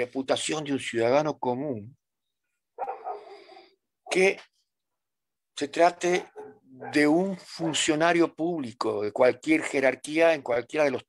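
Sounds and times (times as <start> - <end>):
dog barking: 2.8 - 3.7, 6.1 - 8.0.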